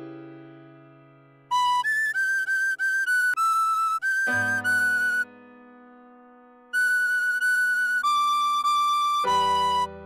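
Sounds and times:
tin whistle melody: 0:01.5 - 0:05.3, 0:06.7 - 0:10.0.

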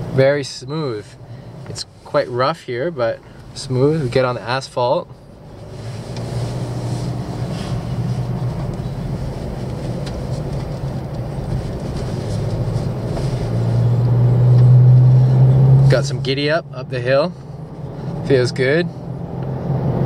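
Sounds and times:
diesel engine hum in cab: 0:00.0 - 0:20.0
tyre noise on asphalt: 0:05.2 - 0:16.6.

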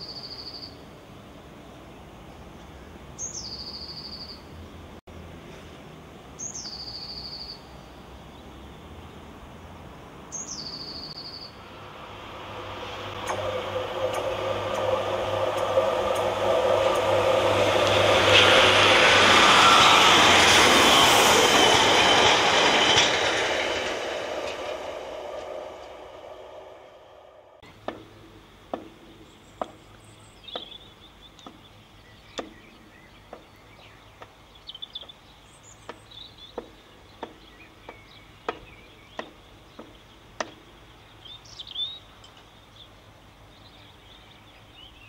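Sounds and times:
train passing: 0:03.4 - 0:29.8.

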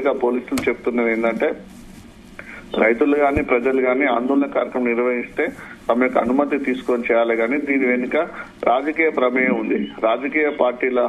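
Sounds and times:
man speaking over a telephone: 0:02.7 - 0:11.0.

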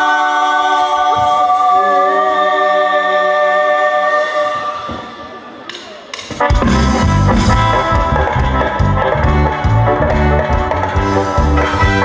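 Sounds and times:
dance band sustained chords: 0:00.0 - 0:12.0.

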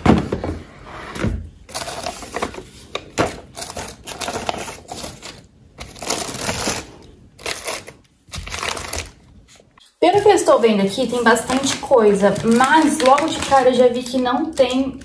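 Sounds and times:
tissue paper rustling and crinkling: 0:01.7 - 0:09.6, 0:11.0 - 0:14.8.

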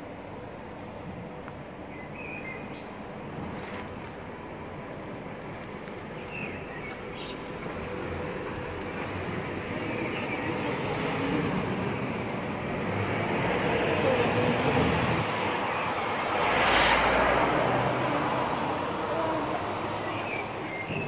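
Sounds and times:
vehicle passing close by: 0:12.8 - 0:20.0.

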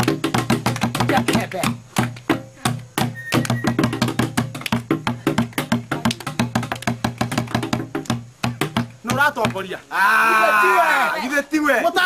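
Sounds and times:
hand drum beaten with stick: 0:00.0 - 0:09.8.

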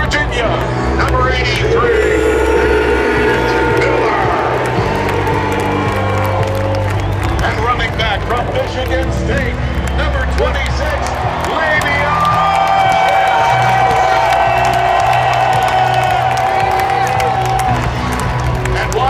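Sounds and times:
bass-heavy music over loudspeakers: 0:00.0 - 0:15.5
crowd cheering and whooping: 0:00.7 - 0:08.8, 0:10.0 - 0:18.5.

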